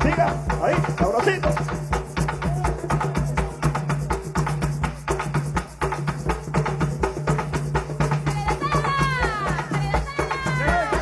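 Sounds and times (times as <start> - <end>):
fast drum rhythm: 0.0 - 11.0.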